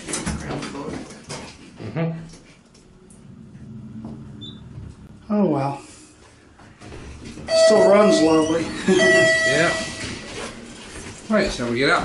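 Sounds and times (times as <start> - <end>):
elevator low hum: 2.9 - 5.4, 6.4 - 11.2
short high beep: 7.5 - 10.2.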